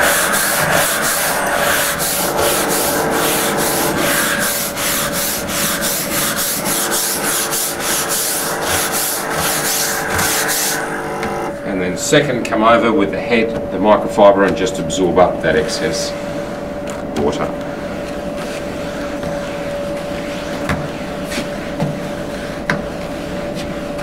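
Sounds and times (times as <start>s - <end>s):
brush scrubbing wet floor: 0.0s - 11.5s, 17.2s - 24.0s
steam cleaner hum: 0.0s - 12.0s.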